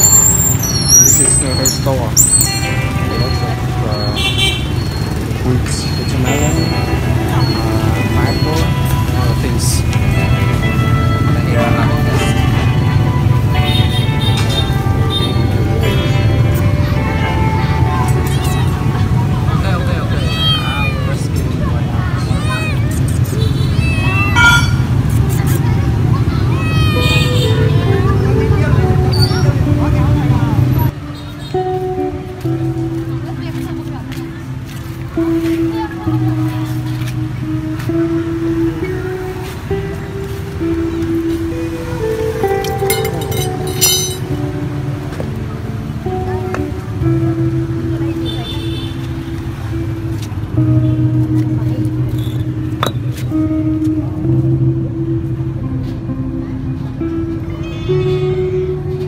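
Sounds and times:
background music with held notes: 0.0 - 59.0
motorbike traffic rumble: 0.0 - 59.0
street market noise: 0.0 - 59.0
people talking: 1.2 - 4.3, 5.4 - 10.3, 11.3 - 12.6, 16.1 - 31.4, 33.0 - 37.5
cat meowing: 20.2 - 21.1.

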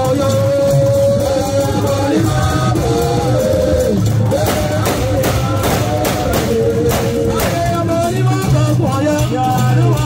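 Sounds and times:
drums beating steadily: 0.0 - 10.0.

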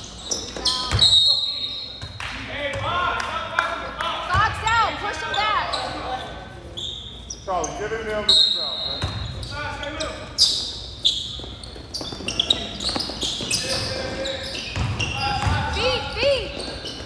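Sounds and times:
shoes squeaking: 0.0 - 2.1, 4.5 - 17.0
basketball bouncing on gym floor: 14.7 - 17.0.

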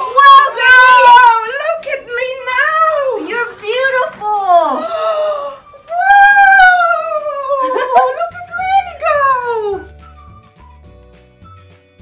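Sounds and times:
woman exclaiming ohh: 4.7 - 8.4.

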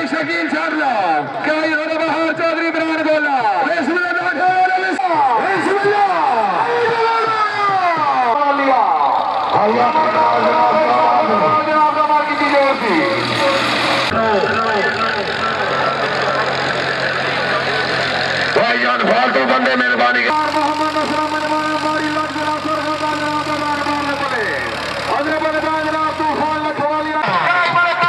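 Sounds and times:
engine running steadily: 4.9 - 28.0.

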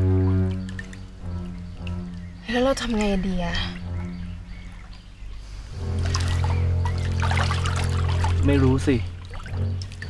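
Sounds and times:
low film score drone: 0.0 - 10.0
stream water trickling: 0.0 - 10.0.

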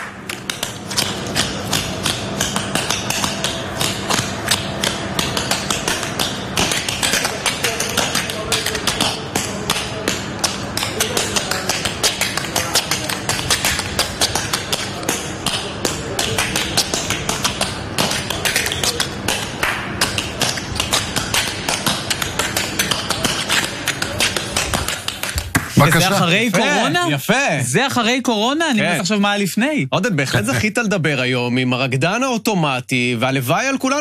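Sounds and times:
rapid rhythmic tapping: 0.0 - 27.0.

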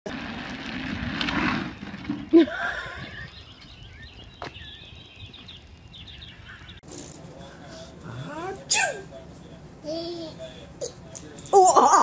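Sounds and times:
plastic wheels rolling on asphalt: 0.1 - 7.4.

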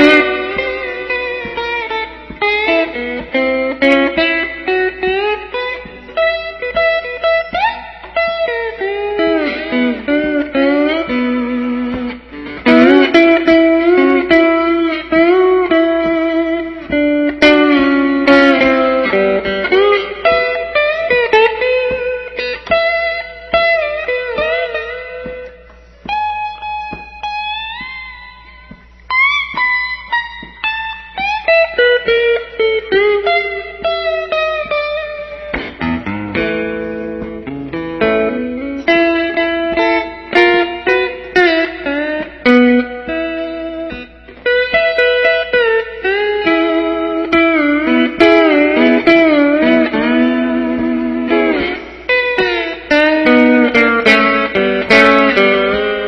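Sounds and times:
electric guitar blues lines: 0.0 - 56.0.

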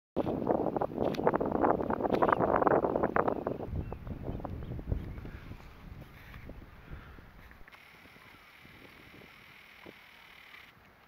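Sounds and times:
wind buffeting microphone: 0.2 - 10.0.

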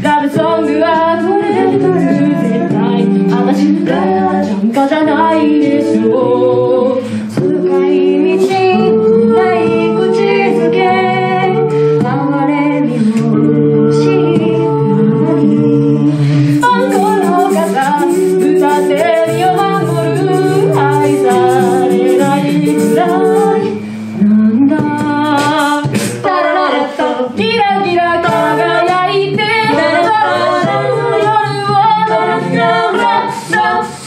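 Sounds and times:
a cappella group singing: 0.0 - 34.0
vocal percussion beat: 0.0 - 34.0.

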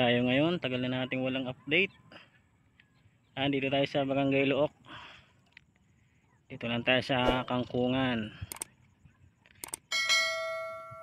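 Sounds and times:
mouse clicks: 8.5 - 8.7, 9.6 - 9.8.

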